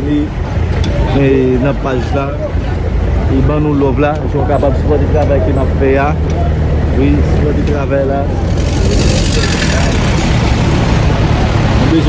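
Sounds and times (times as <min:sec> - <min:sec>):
large vehicle engine rumbling: 0:00.0 - 0:12.0
street traffic: 0:00.0 - 0:12.0.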